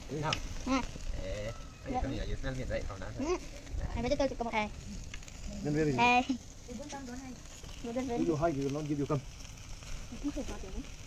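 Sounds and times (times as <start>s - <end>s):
meat sizzling on fire: 0.0s - 11.0s
children talking and calling: 0.3s - 8.6s, 9.8s - 11.0s.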